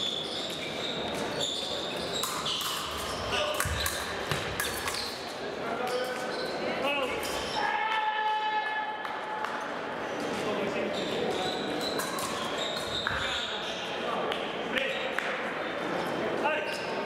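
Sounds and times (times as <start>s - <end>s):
voices in background: 0.2s - 17.0s
fencing blades clicking: 2.2s - 5.2s, 11.9s - 13.0s.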